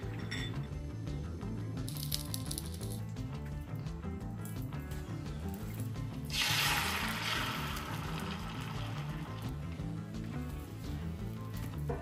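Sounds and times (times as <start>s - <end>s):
background music: 0.0s - 12.0s
egg sizzling in a hot pan: 6.3s - 9.6s.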